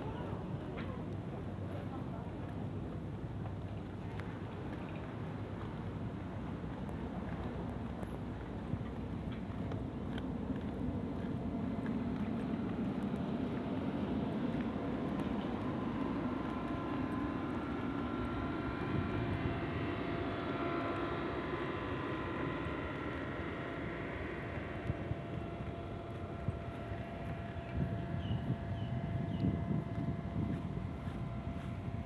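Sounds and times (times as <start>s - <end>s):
distant engine rumble: 7.4s - 32.0s
faint even whine: 8.0s - 32.0s.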